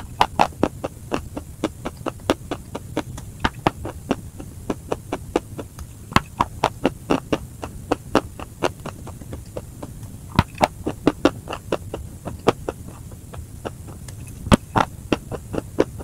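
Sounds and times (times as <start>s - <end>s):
crunchy chewing: 0.0s - 16.0s
low steady hum: 0.0s - 16.0s.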